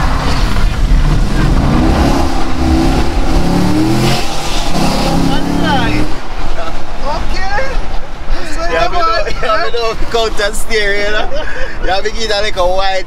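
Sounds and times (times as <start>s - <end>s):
car engine accelerating: 0.0s - 8.4s.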